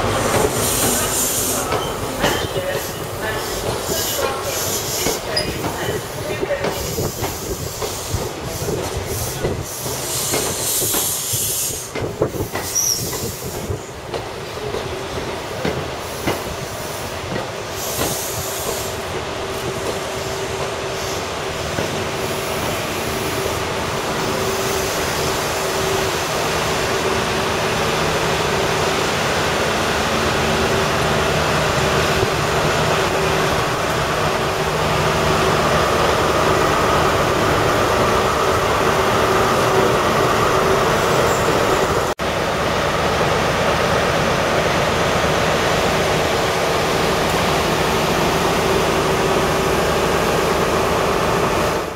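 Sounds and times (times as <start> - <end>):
train coaches rolling past: 0.0 - 51.9.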